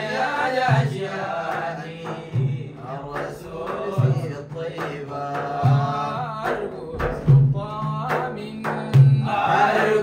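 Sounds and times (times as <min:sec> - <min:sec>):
frame drums: 0:00.0 - 0:10.0
men chanting together: 0:00.0 - 0:10.0.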